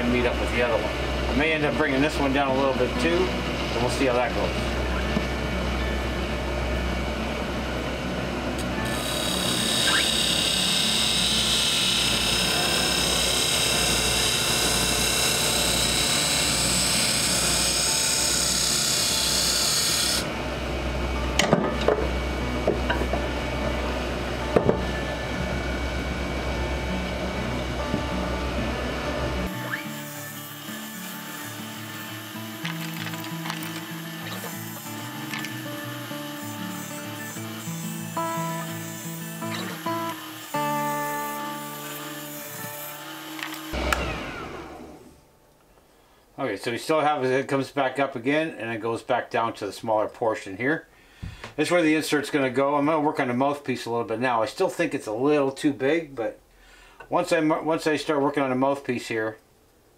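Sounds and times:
music: 0.0s - 43.8s
wood lathe humming: 0.0s - 45.1s
turning tool cutting wood: 8.6s - 20.4s, 28.9s - 45.0s.

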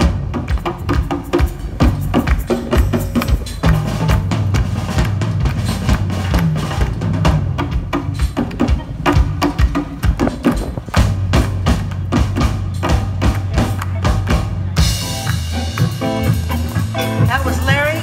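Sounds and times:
bass line: 0.0s - 18.0s
drum kit: 0.0s - 18.0s
hand percussion: 0.0s - 18.0s.

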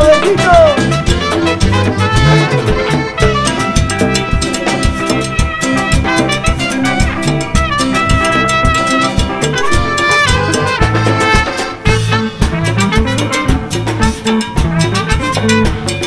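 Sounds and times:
bass guitar: 0.0s - 16.0s
congas: 0.0s - 16.0s
drum kit: 0.0s - 16.0s
trumpet solo: 0.0s - 16.0s.

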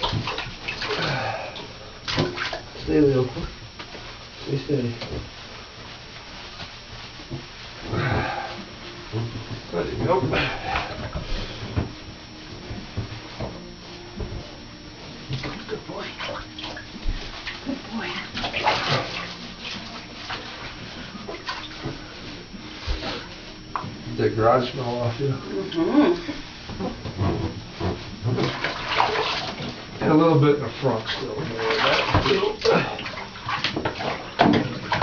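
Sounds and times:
bathwater sloshing and splashing: 0.0s - 12.0s, 15.2s - 35.0s.

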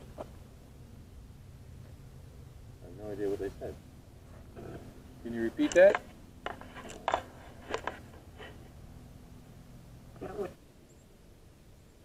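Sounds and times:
sharp clicks: 5.6s - 8.0s.

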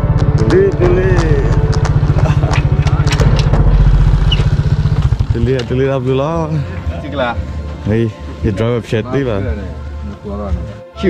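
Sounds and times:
motorcycle engine idling: 0.0s - 6.9s.

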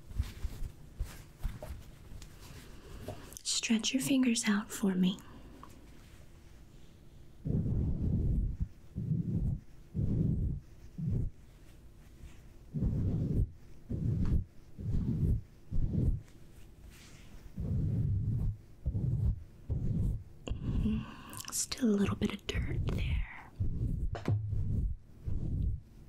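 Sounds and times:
cloth rubbing on microphone: 0.0s - 4.6s, 7.3s - 26.0s.

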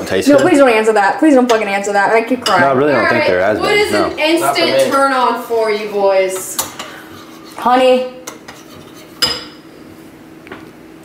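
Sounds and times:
dishes clinking: 1.3s - 4.9s, 6.3s - 9.7s.

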